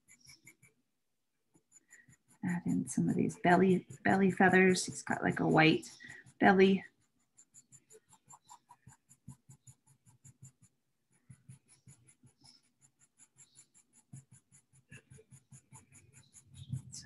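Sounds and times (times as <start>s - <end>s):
pencil scratching on paper: 0.0s - 0.8s, 1.5s - 17.0s.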